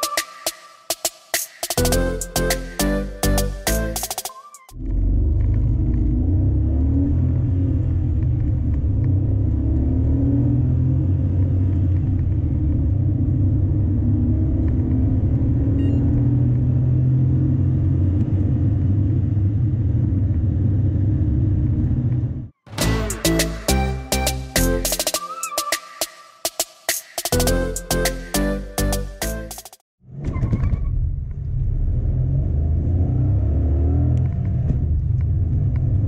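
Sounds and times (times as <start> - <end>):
car engine accelerating: 4.8 - 23.4, 31.3 - 36.0
road noise: 4.8 - 24.4.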